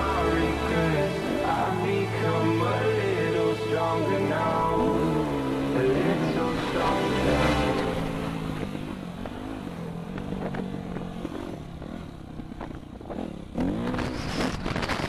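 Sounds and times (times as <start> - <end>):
dirt bike engine revving: 0.0 - 15.0.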